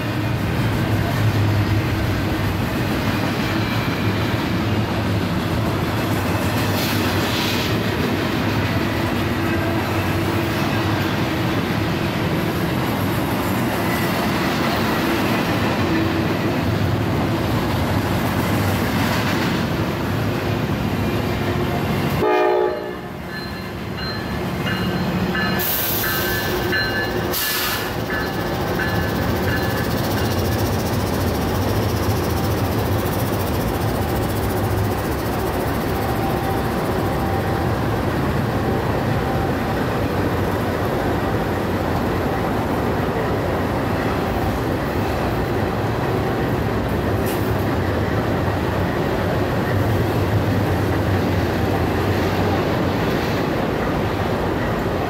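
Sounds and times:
diesel locomotives under power: 0:00.0 - 0:55.0
freight train rumbling: 0:00.0 - 0:55.0
wheels clattering on rail: 0:21.3 - 0:42.4.

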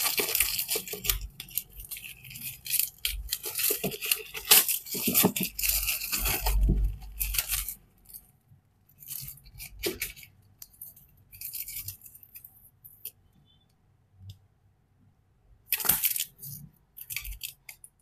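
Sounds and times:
plastic wrap crinkling: 0:00.0 - 0:08.3, 0:09.0 - 0:13.2.

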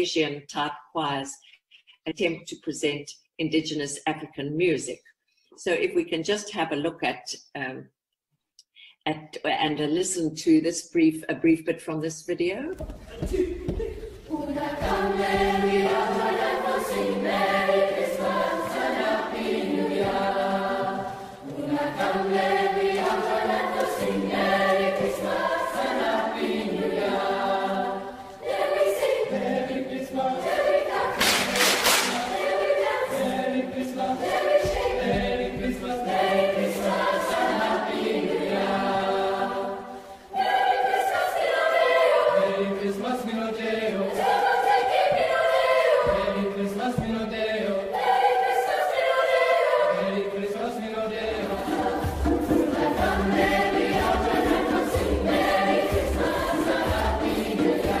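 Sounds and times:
youth choir singing: 0:13.1 - 0:58.0.

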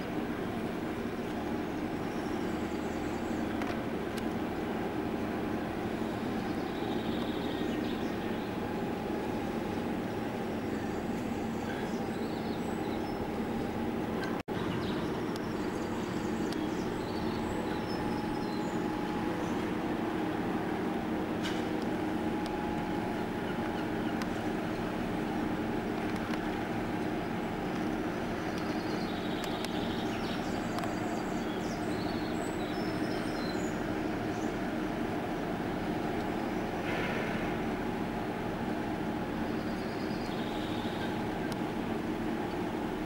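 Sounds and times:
engine hum with low rumble: 0:00.0 - 0:43.0.

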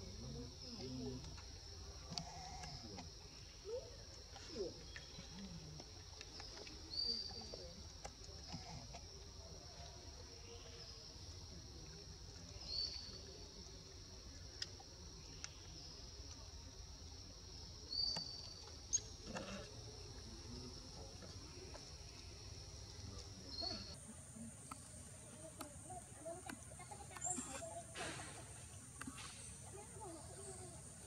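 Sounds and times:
insects droning: 0:00.0 - 0:31.0
faint clicks: 0:02.1 - 0:03.2.

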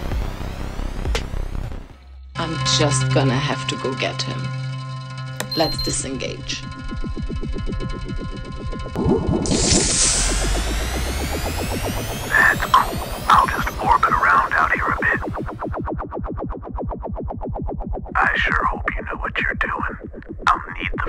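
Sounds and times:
electronic synthesizer music: 0:05.2 - 0:16.0
warbling electronic chirps: 0:05.5 - 0:15.9
bright whooshing sweep: 0:09.0 - 0:13.3.

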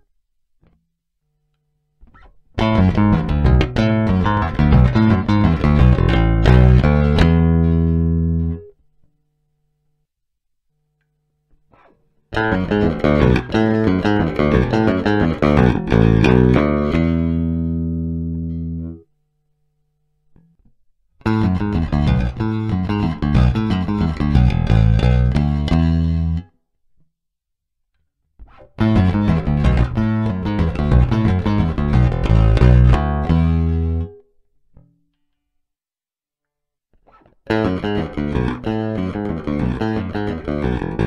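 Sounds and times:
bass guitar riff fingerstyle: 0:02.0 - 0:08.8, 0:11.6 - 0:19.0, 0:20.4 - 0:26.6, 0:28.4 - 0:35.0, 0:37.0 - 0:41.0.

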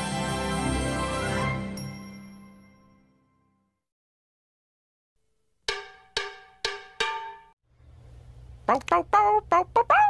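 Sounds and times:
bell-like jingle: 0:00.0 - 0:03.7.

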